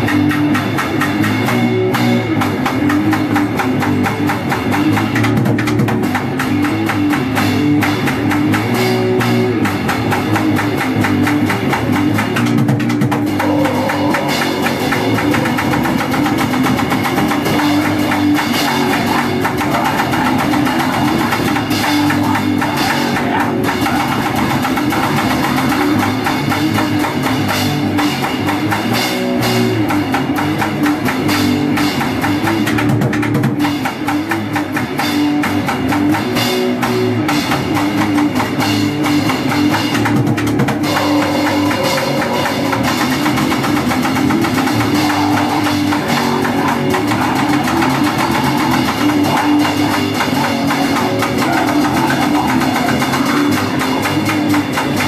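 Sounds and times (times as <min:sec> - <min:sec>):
bass guitar: 0:00.0 - 0:55.0
distorted electric guitar: 0:00.0 - 0:55.0
drum kit: 0:00.0 - 0:55.0.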